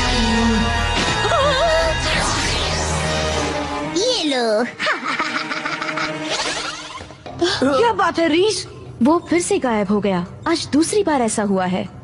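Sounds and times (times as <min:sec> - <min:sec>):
background music: 0:00.0 - 0:12.0
boy snickering laugh: 0:04.8 - 0:06.4.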